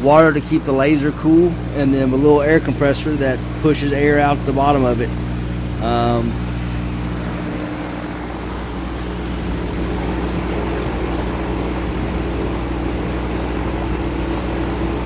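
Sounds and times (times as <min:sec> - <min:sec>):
humming buzz of machinery: 0:00.0 - 0:15.0.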